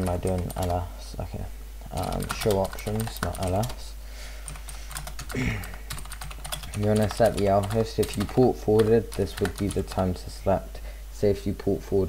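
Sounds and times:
computer keyboard keystrokes: 0:02.0 - 0:03.8, 0:04.4 - 0:05.3, 0:05.9 - 0:09.9
person coughing: 0:05.3 - 0:05.8.

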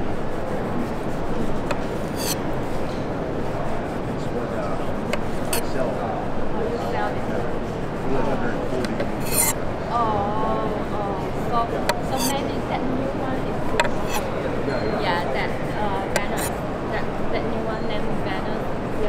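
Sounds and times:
background hubbub: 0:00.0 - 0:19.0
knife scraping orange rind: 0:00.1 - 0:02.9, 0:03.6 - 0:05.9, 0:06.8 - 0:09.7, 0:10.8 - 0:17.3.

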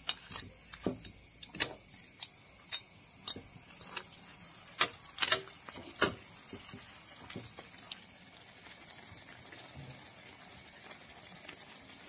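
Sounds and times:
pork pieces mixed in steel pot: 0:00.0 - 0:12.0
clinks against metal pot: 0:02.7 - 0:04.0, 0:04.8 - 0:06.2.

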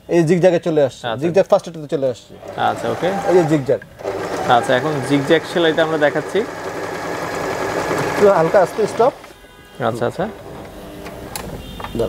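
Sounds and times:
electric sewing machine running: 0:02.4 - 0:09.3.

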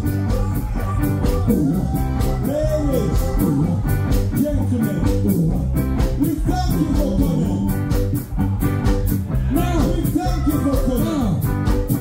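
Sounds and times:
live ska band playing: 0:00.0 - 0:12.0.

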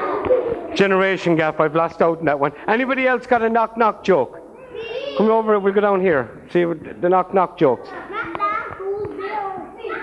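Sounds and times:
children talking and calling out: 0:00.0 - 0:02.0, 0:04.3 - 0:06.4, 0:07.6 - 0:10.0.

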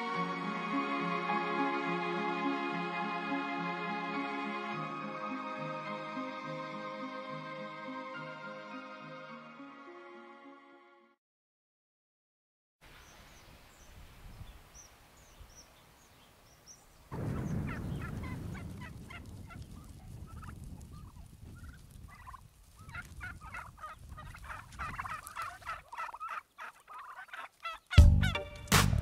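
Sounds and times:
turkeys calling: 0:14.8 - 0:28.6
rhythmic music with a beat: 0:28.0 - 0:29.0.

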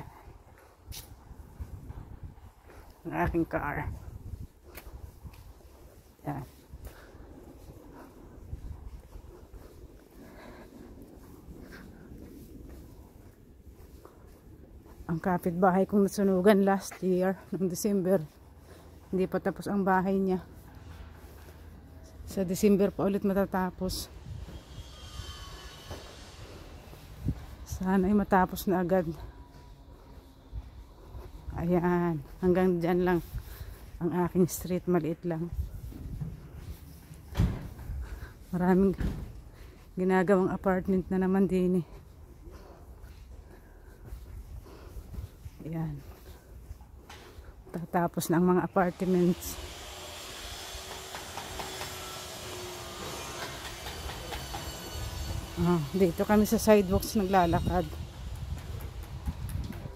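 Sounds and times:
city street rumble: 0:00.0 - 0:49.6, 0:50.9 - 0:59.9.

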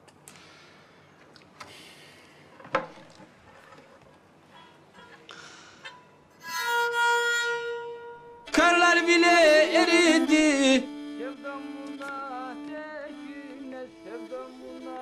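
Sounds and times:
bowed string instrument: 0:06.4 - 0:15.0
lively fiddle melody: 0:06.4 - 0:15.0.

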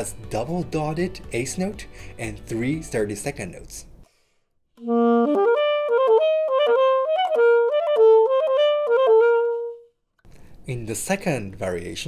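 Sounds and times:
alto saxophone playing fast run: 0:04.8 - 0:09.9.

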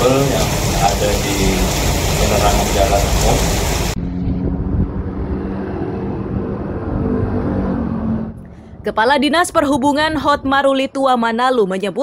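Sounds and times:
muffled vehicle engine hum: 0:03.9 - 0:08.9.

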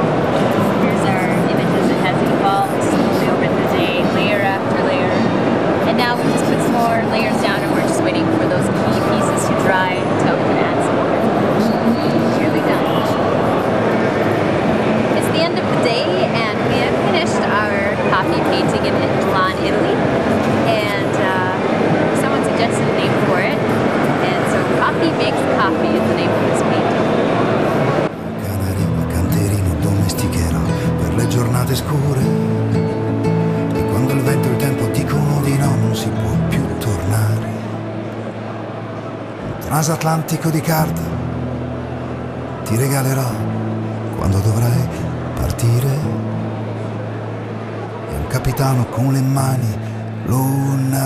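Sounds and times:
crowd chatter: 0:00.0 - 0:51.0
steady background noise: 0:00.0 - 0:51.0
woman talking: 0:00.8 - 0:10.9, 0:12.2 - 0:13.2, 0:15.2 - 0:20.0, 0:20.6 - 0:23.6, 0:24.2 - 0:27.0
background music: 0:28.1 - 0:51.0.

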